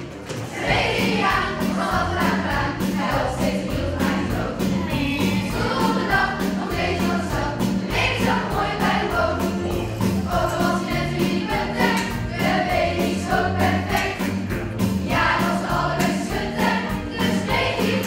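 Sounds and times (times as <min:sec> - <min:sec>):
children's choir singing: 0:00.0 - 0:18.0
instrumental accompaniment with beat: 0:00.0 - 0:18.0.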